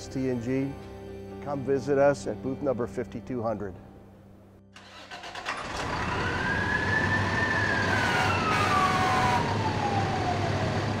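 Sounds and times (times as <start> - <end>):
fire engine siren wailing: 5.6 - 11.0.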